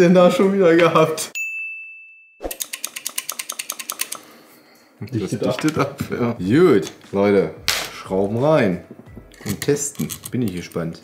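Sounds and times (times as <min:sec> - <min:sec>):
mechanical ratcheting clicks: 0:02.5 - 0:04.2, 0:09.3 - 0:10.7.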